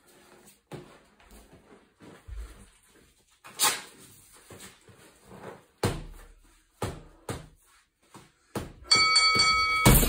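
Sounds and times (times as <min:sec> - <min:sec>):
gloved punches on heavy bag: 0:08.6 - 0:10.0.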